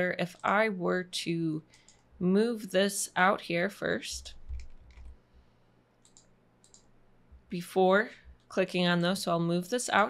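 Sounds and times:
computer mouse clicks: 0:01.7 - 0:02.1, 0:04.3 - 0:05.2, 0:06.0 - 0:06.9.

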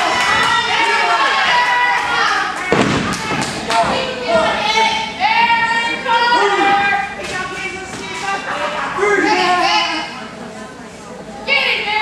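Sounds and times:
people shouting: 0:00.0 - 0:07.2.

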